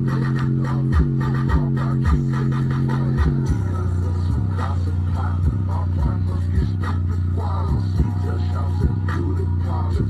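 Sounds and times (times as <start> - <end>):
bass-heavy music from speaker: 0.0 - 10.0.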